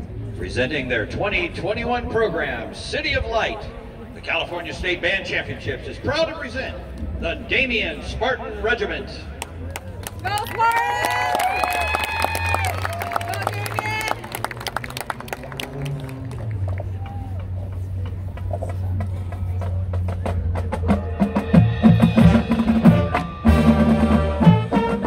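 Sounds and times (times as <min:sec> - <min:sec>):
marching drums and horns: 0:15.4 - 0:25.0.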